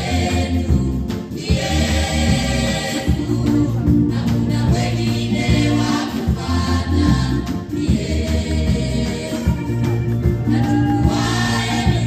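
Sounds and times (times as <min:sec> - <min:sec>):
choir singing gospel song: 0:00.0 - 0:12.0
amplified lead voices: 0:10.4 - 0:12.0.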